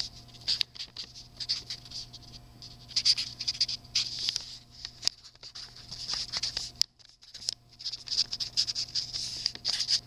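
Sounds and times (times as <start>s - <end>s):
pen scratching on paper: 0.5s - 4.1s, 7.3s - 10.0s.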